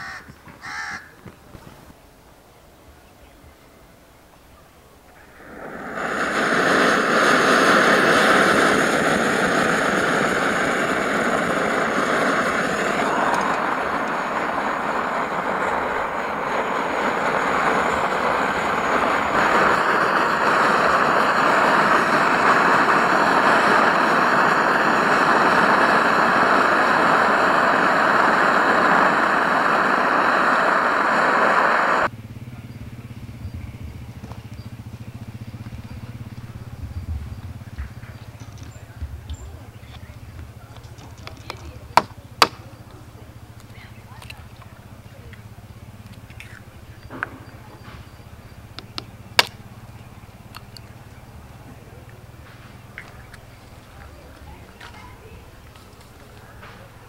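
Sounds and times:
camping stove hissing: 0.0 - 1.9, 4.9 - 57.0
quiet outdoor ambience: 0.0 - 57.0.

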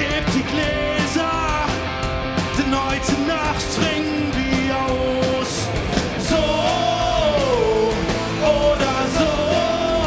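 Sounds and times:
live rock band playing: 0.0 - 10.0
person singing: 2.6 - 10.0.

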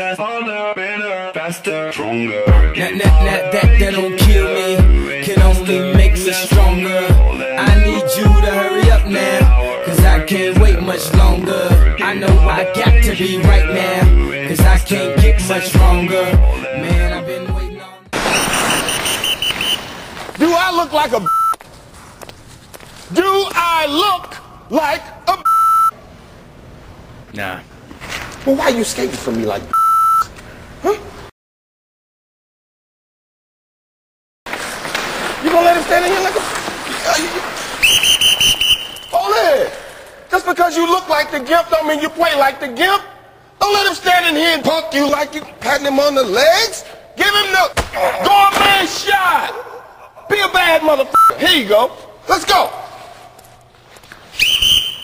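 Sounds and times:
person speaking: 7.6 - 9.4, 35.4 - 37.6
sports whistle blast: 18.2 - 19.9, 37.8 - 39.2, 54.3 - 55.0
censor bleep: 21.2 - 21.6, 25.4 - 26.0, 29.7 - 30.3, 51.2 - 51.4.

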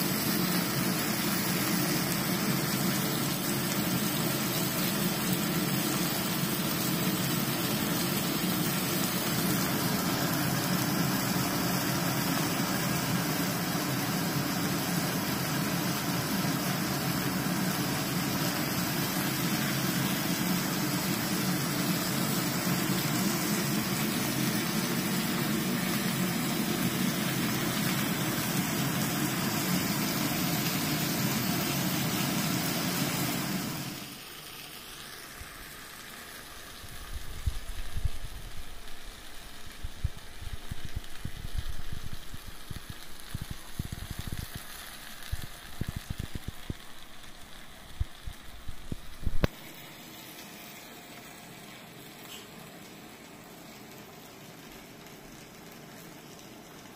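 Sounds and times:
extractor fan running: 0.0 - 56.9
meat frying in a pan: 0.0 - 56.9.

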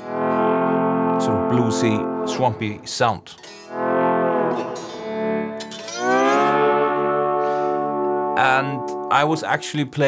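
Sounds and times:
lap steel guitar chord: 0.0 - 9.7.

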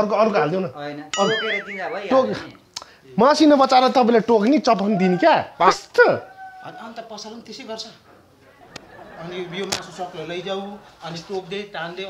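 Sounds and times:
metallic ding: 1.1 - 2.1
man speaking: 1.2 - 2.6.

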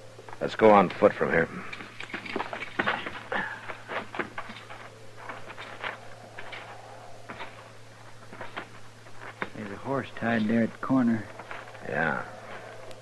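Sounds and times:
low recording hum: 0.0 - 13.0.

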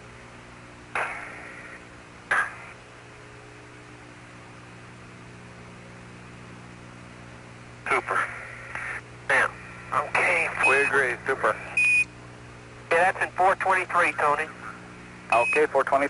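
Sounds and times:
radio hiss and low hum: 0.0 - 16.0
radio transmission bursts: 1.0 - 2.8, 7.9 - 12.1, 12.9 - 16.0.

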